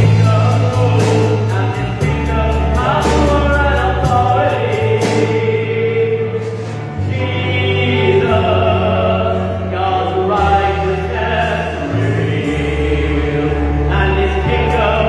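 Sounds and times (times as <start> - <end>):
men singing worship song: 0.0 - 15.0.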